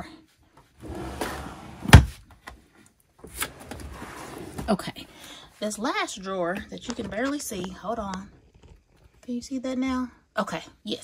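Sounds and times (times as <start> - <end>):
drawer sliding shut with thump: 0.9 - 2.2.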